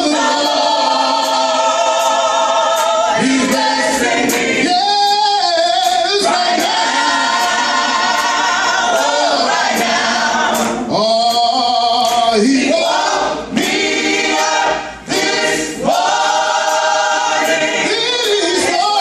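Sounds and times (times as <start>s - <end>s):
choir singing a cappella: 0.0s - 19.0s.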